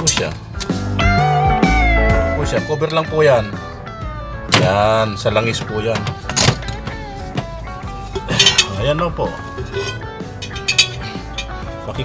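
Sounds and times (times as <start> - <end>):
music playing: 0.0 - 12.0
metal knocks: 9.6 - 11.7.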